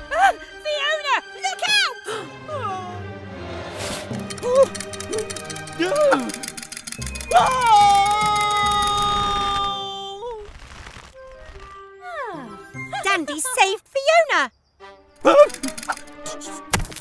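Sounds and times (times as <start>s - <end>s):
background music: 0.0s - 10.2s, 11.2s - 17.0s
rapid even clattering: 4.2s - 8.9s
vocal cries: 4.3s - 6.5s, 7.2s - 10.3s, 15.2s - 16.0s.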